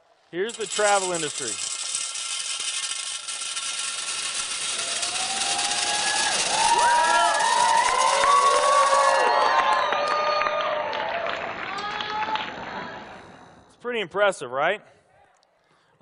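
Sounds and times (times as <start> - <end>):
gumballs pouring into glass jar: 0.3 - 9.2
audience whooping and cheering: 4.8 - 13.3.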